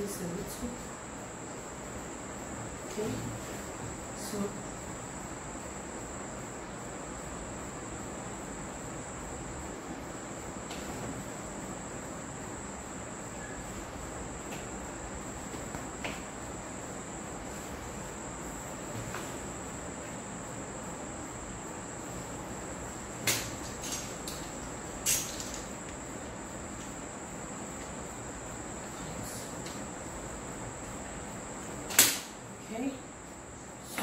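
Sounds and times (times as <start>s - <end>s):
background hiss: 0.0s - 34.0s.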